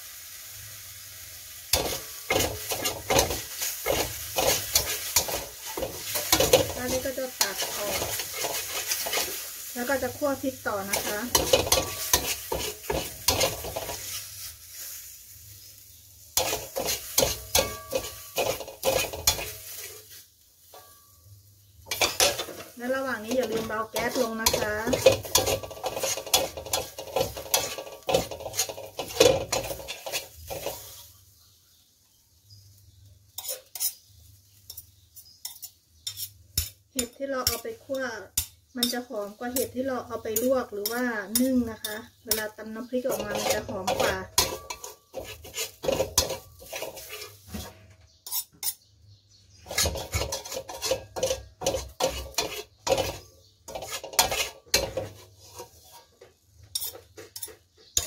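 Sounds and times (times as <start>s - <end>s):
metal spatula scraping a wok: 0.1s - 31.4s, 32.8s - 58.0s.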